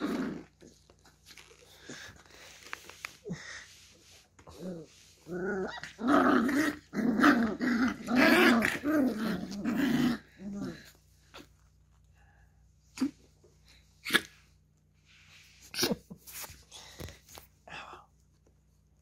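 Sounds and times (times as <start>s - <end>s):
puppies growling and yapping: 0.0s - 2.3s, 4.4s - 11.7s.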